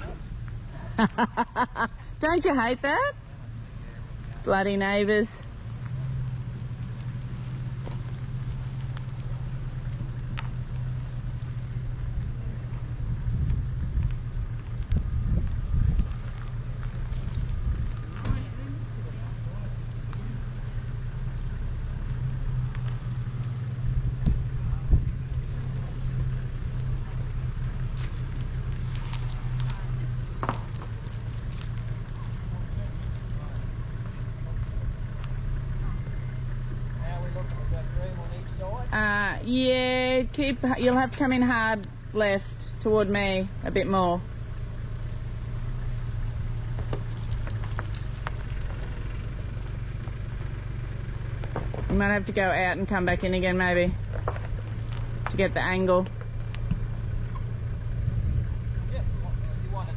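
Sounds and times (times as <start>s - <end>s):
vehicle engine running low revs: 0.0s - 59.9s.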